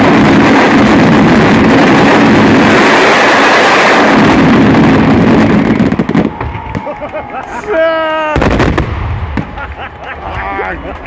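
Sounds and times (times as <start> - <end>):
sharp firework reports: 0.0 - 7.0, 8.2 - 9.7
firework bang: 0.0 - 7.1, 8.4 - 9.8
spectators shouting: 5.4 - 8.6, 9.4 - 11.0.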